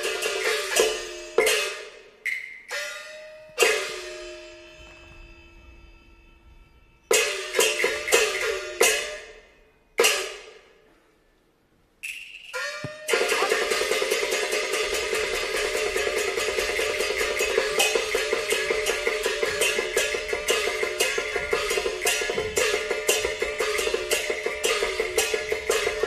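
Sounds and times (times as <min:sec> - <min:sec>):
gongs: 0:00.0 - 0:11.2, 0:12.0 - 0:26.0
cymbals: 0:00.0 - 0:26.0.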